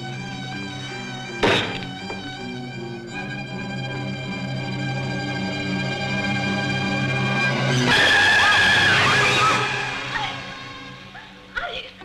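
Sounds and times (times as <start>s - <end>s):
held orchestral chord: 0.0s - 11.4s.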